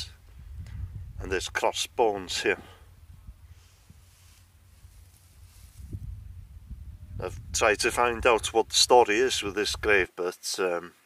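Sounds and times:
wind rumble on microphone: 0.0s - 10.0s
faint rustling: 3.3s - 6.7s.

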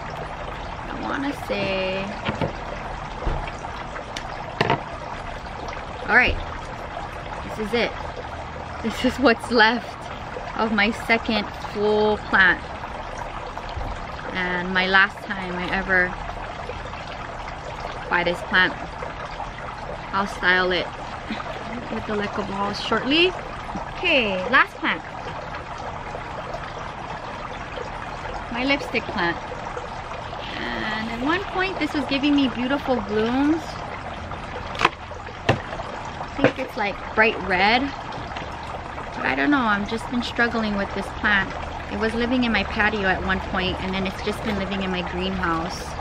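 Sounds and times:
trickling water: 0.0s - 46.0s.

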